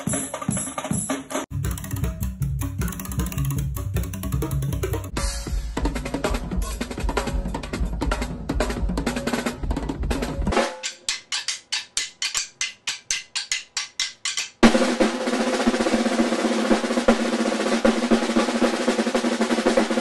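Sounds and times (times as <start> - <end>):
snare drums rapid strokes: 0.0 - 5.1, 10.5 - 20.0
drum kit playing: 0.0 - 20.0.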